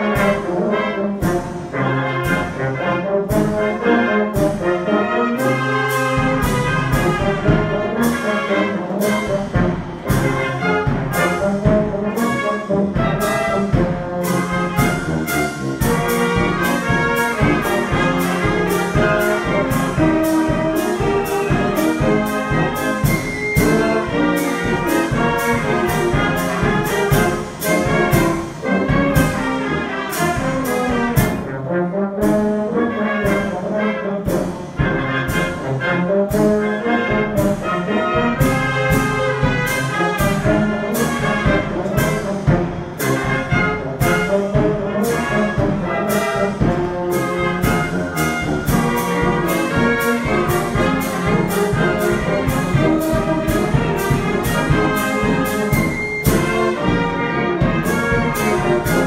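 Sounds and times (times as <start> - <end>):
brass band playing: 0.0 - 59.0.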